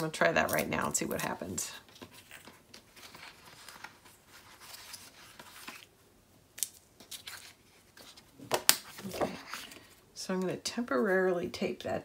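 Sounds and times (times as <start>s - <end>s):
paper rustling: 1.8s - 5.9s, 6.6s - 10.0s.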